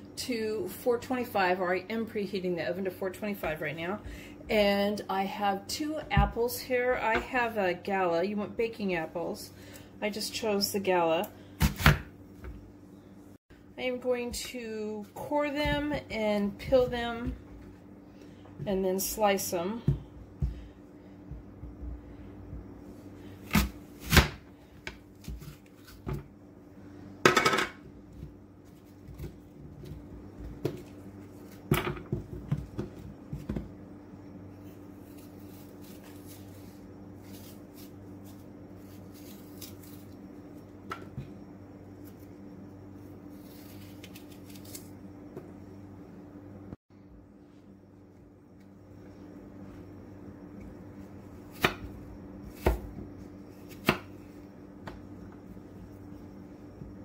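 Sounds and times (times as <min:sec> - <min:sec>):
apple slicer crunching through apple: 0:43.4 - 0:44.9.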